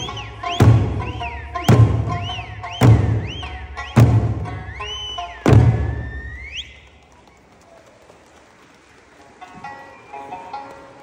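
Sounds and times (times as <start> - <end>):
high sliding whistle: 0.0 - 6.9.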